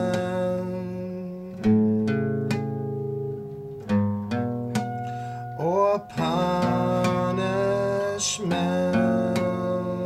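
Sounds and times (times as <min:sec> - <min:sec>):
guitar chords ringing: 0:00.0 - 0:10.0.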